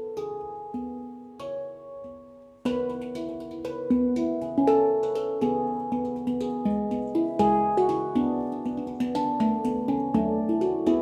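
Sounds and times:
handpan notes ringing: 0.0 - 11.0.

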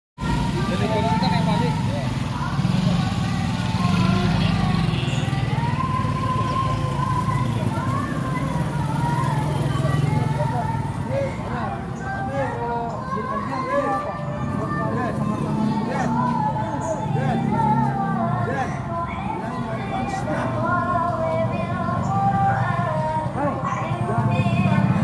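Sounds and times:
scooter engines running: 0.2 - 25.0
voices talking: 0.2 - 25.0.

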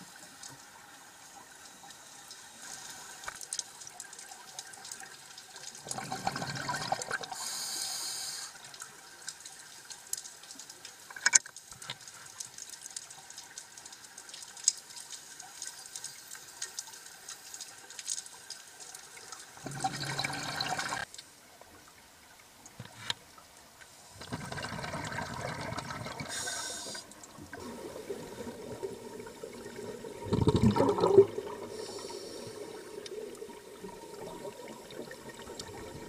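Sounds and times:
faint crackle of clicks: 0.1 - 6.1, 8.5 - 19.7, 21.0 - 24.4, 26.3 - 27.8, 30.7 - 36.0
underwater regulator exhaust bubbling: 24.2 - 36.0.

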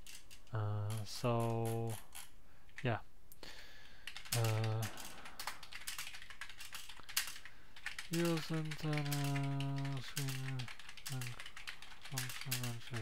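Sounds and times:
computer keyboard typing: 4.0 - 13.0.

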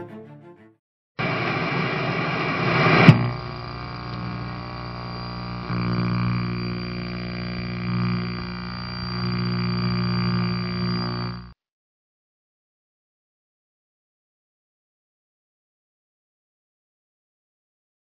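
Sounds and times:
static hiss: 1.2 - 11.5
thin high whine: 1.2 - 11.6.

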